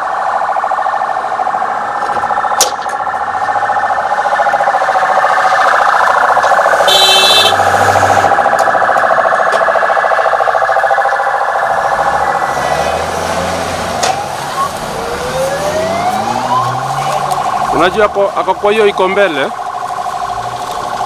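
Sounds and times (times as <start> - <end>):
police siren warbling: 0.0 - 21.0.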